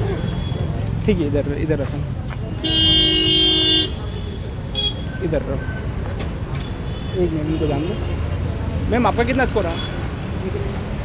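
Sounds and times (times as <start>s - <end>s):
road traffic noise: 0.0s - 11.0s
vehicle horn honking: 2.6s - 5.0s.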